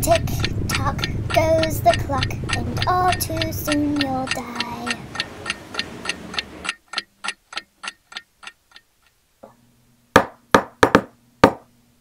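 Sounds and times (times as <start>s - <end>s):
clock ticking: 0.0s - 9.2s
low steady hum: 0.0s - 12.0s.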